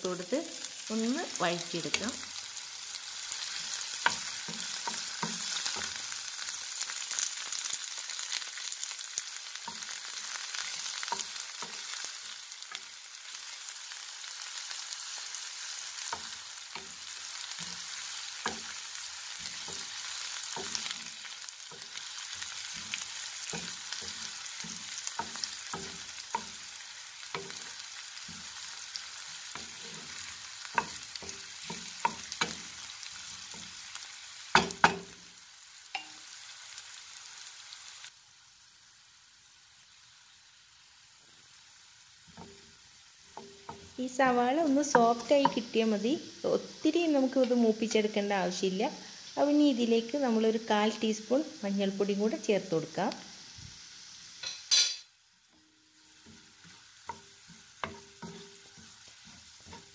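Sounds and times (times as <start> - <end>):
vegetables sizzling in hot oil: 0.0 - 59.9
spatula scraping and tapping pan: 3.4 - 6.1, 10.6 - 12.0, 16.0 - 35.2, 42.3 - 44.0, 44.8 - 45.7, 54.4 - 59.9.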